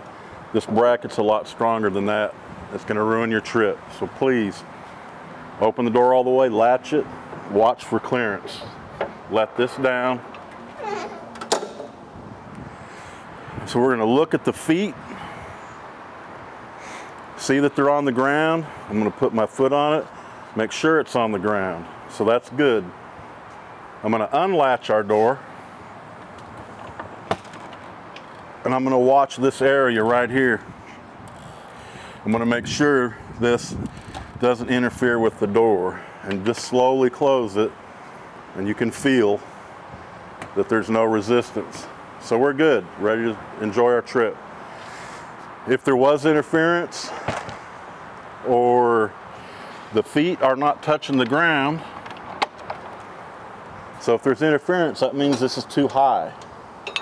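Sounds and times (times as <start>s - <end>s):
door latch click: 10.5s - 12.0s
background hiss: 30.5s - 32.4s, 44.1s - 46.0s, 46.8s - 57.0s.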